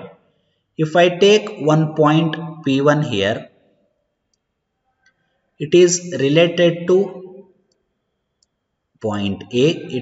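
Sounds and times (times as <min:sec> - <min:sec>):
man lecturing: 0:00.8 - 0:03.6, 0:05.6 - 0:07.4, 0:09.0 - 0:10.0.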